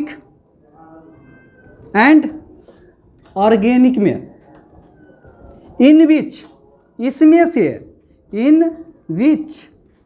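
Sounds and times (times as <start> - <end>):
marker squeaking on whiteboard: 1.1 - 6.6.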